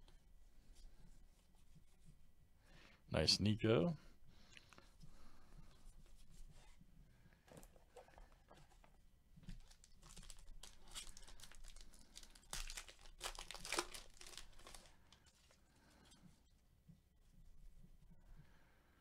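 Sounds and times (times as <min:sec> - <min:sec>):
wrapper tearing and crinkling: 0:09.6 - 0:15.2.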